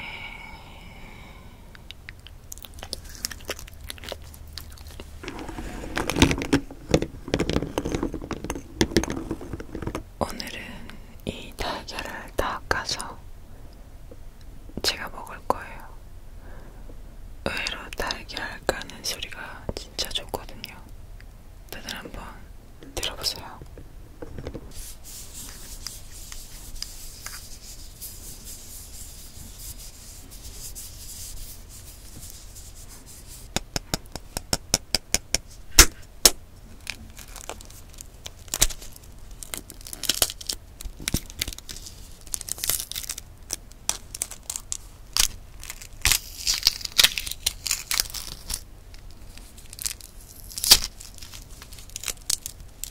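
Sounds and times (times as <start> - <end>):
soft close-up whispering: 0.0 - 2.0, 10.2 - 13.2, 14.8 - 16.0, 17.4 - 20.9, 21.7 - 23.7
eggshells cracking: 2.2 - 5.2, 36.2 - 52.9.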